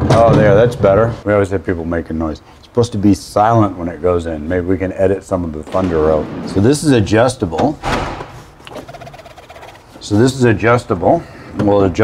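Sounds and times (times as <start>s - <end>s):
door slamming shut: 7.6s - 8.3s.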